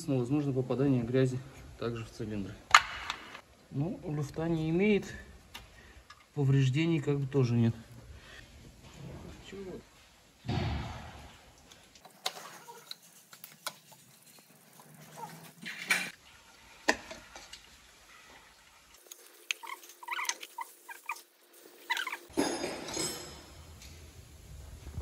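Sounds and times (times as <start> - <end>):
loud thud: 10.4 - 11.5.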